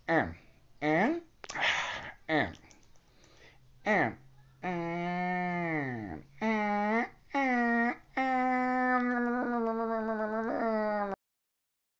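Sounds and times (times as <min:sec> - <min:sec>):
man humming nasally: 0:03.9 - 0:11.2.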